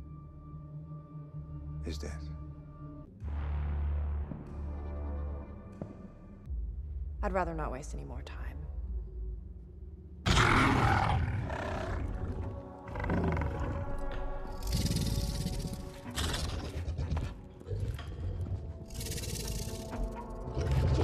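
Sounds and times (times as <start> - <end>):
film score music: 0.0 - 21.0.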